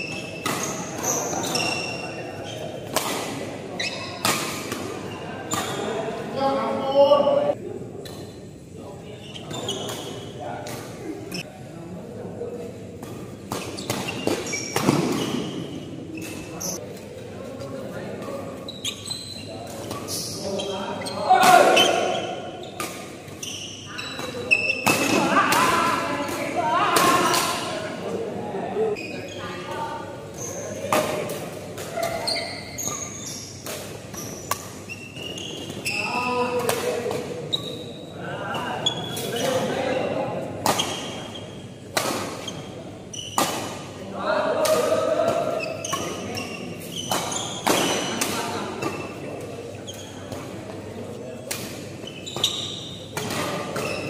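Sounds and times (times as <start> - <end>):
rackets hitting shuttlecock: 13.0 - 15.6.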